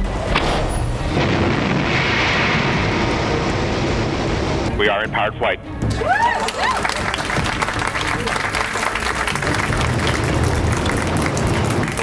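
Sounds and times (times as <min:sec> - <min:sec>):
rushing rumbling roar over loudspeakers: 0:00.0 - 0:05.4, 0:07.2 - 0:12.0
music: 0:02.5 - 0:12.0.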